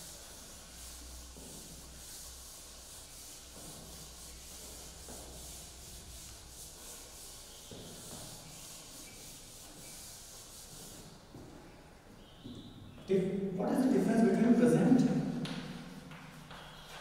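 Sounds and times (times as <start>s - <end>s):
duster rubbing on blackboard: 0.0s - 11.4s.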